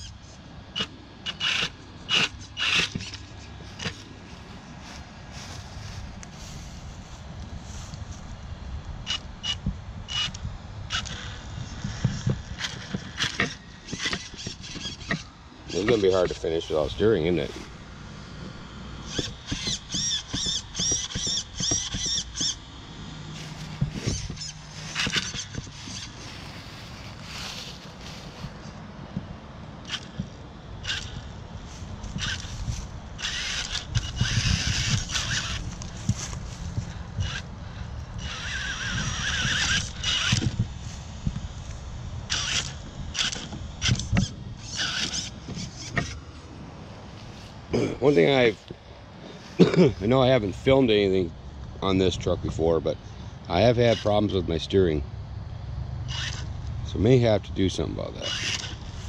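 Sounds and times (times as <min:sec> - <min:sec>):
electric motor whining: 0:00.0 - 0:51.2, 0:56.0 - 0:56.8, 0:57.8 - 0:59.0.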